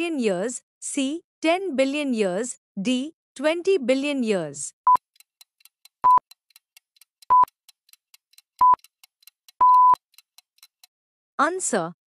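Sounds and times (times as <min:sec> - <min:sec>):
faint quick ticking: 0:04.9 - 0:10.9
high electronic beep: 0:09.6 - 0:10.0.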